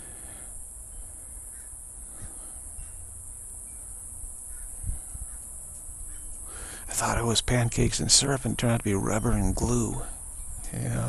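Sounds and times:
faint bird calls: 0.0 - 7.0.

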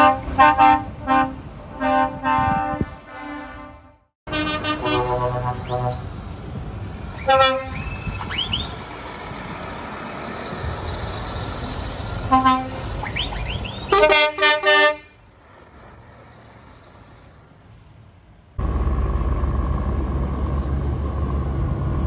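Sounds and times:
truck air horns: 0.0 - 6.2, 7.2 - 8.2, 12.2 - 15.3
diesel engine rumble: 4.3 - 22.0.

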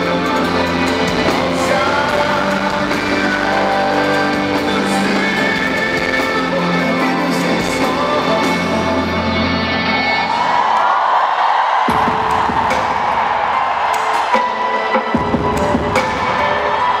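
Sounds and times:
heavy bass line: 0.0 - 10.2
crowd cheering: 0.0 - 17.0
loud live music: 0.0 - 17.0.

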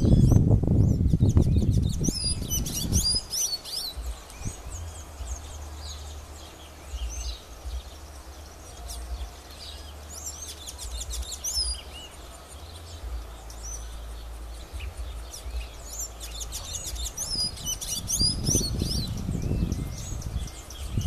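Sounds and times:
low microphone rumble: 0.0 - 21.0
songbirds twittering: 0.0 - 21.0.

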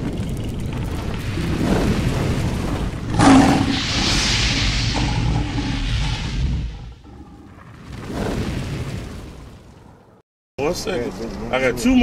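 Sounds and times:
low rumble: 0.0 - 10.0
rushing hiss: 3.0 - 7.3.

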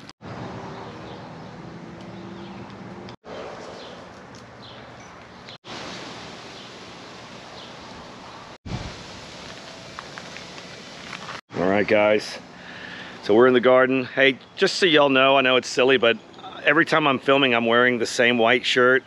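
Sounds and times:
breeze and rustling leaves: 0.0 - 19.0.

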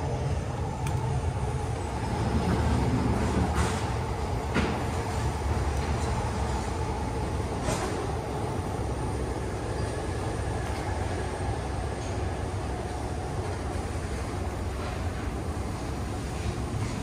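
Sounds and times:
low rumble of traffic: 0.0 - 17.0.

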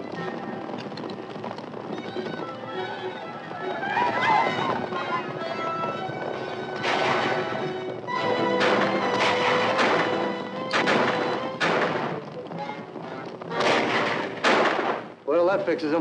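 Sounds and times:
dramatic orchestral music: 3.2 - 14.9
gunshots: 6.7 - 12.8, 13.5 - 15.2.

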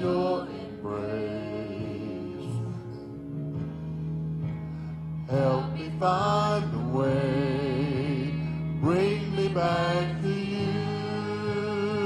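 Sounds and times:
person singing with vibrato: 5.3 - 12.0.

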